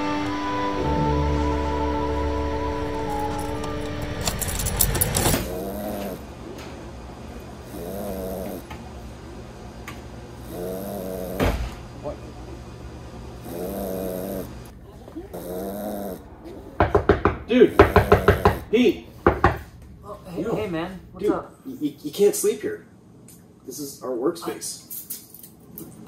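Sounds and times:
music: 0.0 - 5.4
man snoring: 5.3 - 6.3, 7.6 - 8.7, 10.4 - 11.7, 13.4 - 14.7, 15.3 - 16.3, 17.5 - 18.8.

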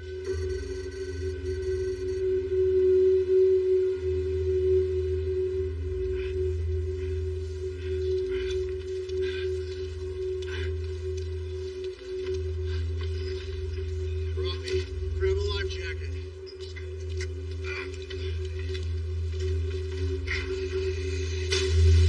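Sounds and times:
sustained droning tone: 0.0 - 22.0
high electronic chirping: 0.2 - 2.2.

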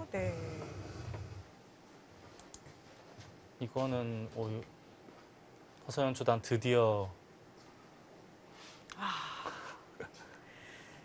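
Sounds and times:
computer mouse clicks: 2.4 - 2.6.

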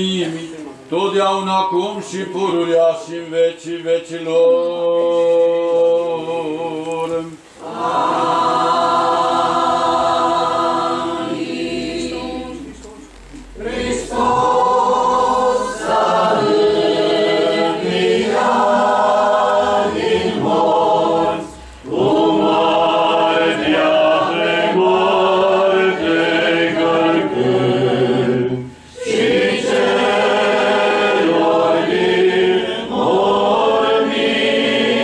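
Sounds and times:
unaccompanied choir chanting: 1.0 - 12.9, 13.5 - 35.0.

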